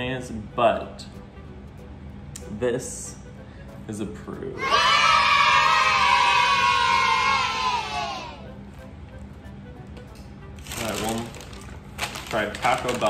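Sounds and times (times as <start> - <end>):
children cheering yay: 4.6 - 8.4.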